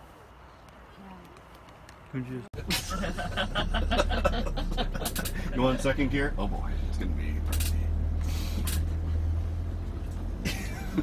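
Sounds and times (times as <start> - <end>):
van engine droning: 2.6 - 11.0.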